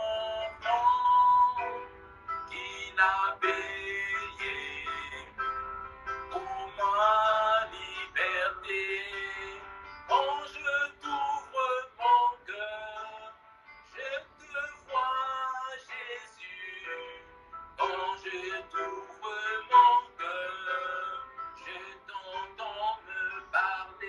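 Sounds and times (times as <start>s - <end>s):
man singing slow worship song: 0.0s - 1.8s, 2.5s - 5.5s, 6.3s - 24.0s.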